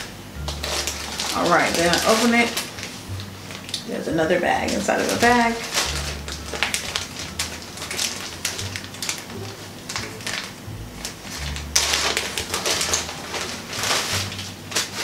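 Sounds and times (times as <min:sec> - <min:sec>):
plastic bag crinkling: 0:00.0 - 0:15.0.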